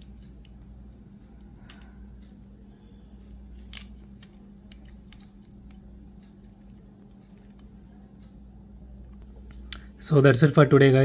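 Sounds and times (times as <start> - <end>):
low hum: 0.0 - 10.1.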